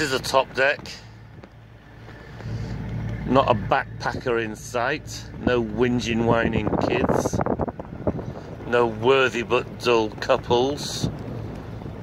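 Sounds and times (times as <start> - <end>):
boat engine humming: 0.0 - 12.0
wind rumbling on microphone: 0.0 - 12.0.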